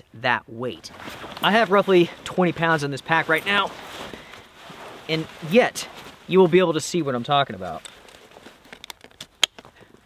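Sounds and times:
backpack straps rustling: 0.8s - 10.0s
buckle clicks: 7.8s - 9.8s.

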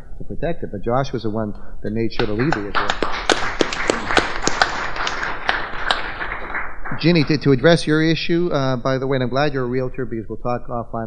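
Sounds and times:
separate claps: 2.2s - 8.1s
audience applause: 2.2s - 8.2s.

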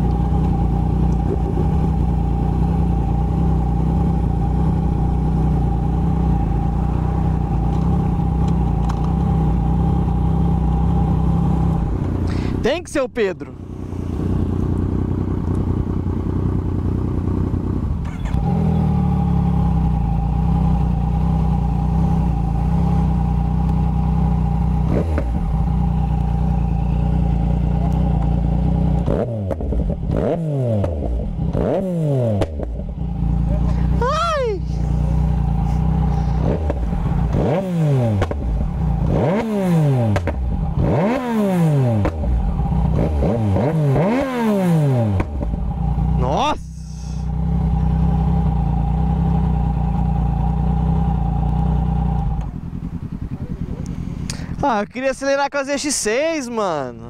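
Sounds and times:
engine revving throttle blips: 0.0s - 54.7s
motorcycle engine idling: 0.0s - 57.0s.

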